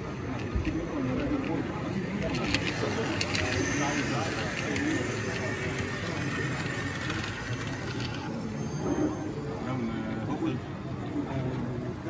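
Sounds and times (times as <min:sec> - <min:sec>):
busy hall background noise: 0:00.0 - 0:12.0
faint distant voices: 0:00.0 - 0:12.0.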